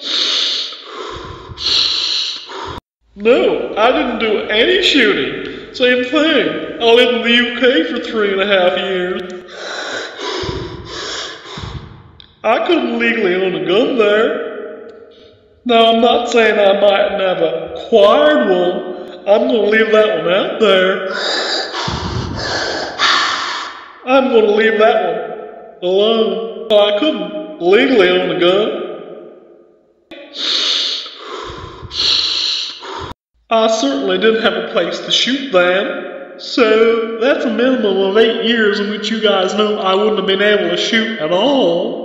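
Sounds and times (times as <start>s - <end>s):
man breathing through nose: 0.0s - 2.9s, 9.4s - 12.2s, 21.1s - 23.9s, 30.4s - 33.2s.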